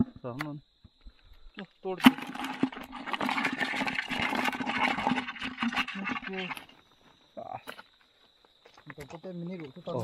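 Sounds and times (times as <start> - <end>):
crabs clattering in plastic bucket: 1.9 - 6.8.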